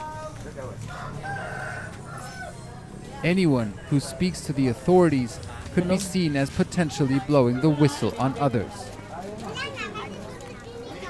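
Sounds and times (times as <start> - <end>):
street background noise: 0.0 - 11.0
rooster crowing: 0.8 - 2.6.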